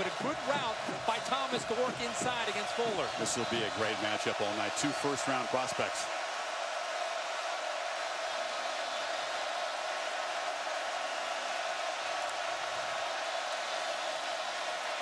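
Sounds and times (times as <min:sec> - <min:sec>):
large stadium crowd noise: 0:00.0 - 0:15.0.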